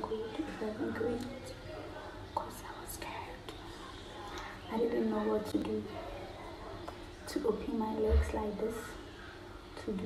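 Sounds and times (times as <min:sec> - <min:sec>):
woman whispering: 0:02.4 - 0:03.8.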